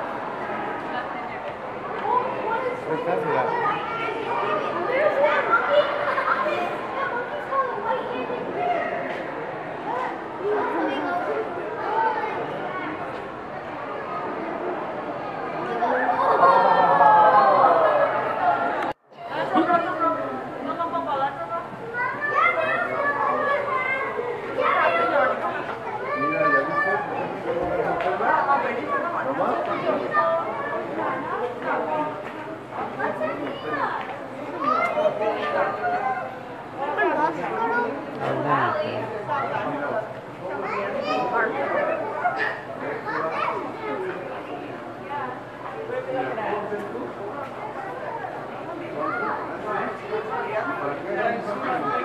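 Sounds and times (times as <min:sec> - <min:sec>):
children's voices: 0:00.0 - 0:46.3, 0:47.4 - 0:52.0
indistinct chatter of people: 0:00.0 - 0:52.0.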